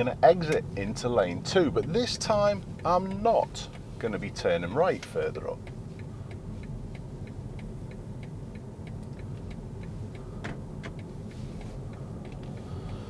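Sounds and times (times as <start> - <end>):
engine and tyres rumbling: 0.0 - 13.0
turn signal ticking: 0.0 - 13.0.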